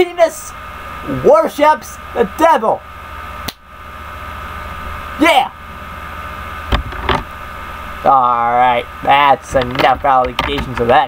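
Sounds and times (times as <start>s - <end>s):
electrical hum and hiss: 0.0s - 11.0s.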